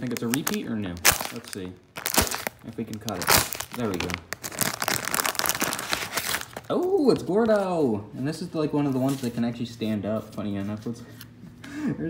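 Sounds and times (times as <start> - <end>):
foil packaging crinkling: 0.0 - 7.0.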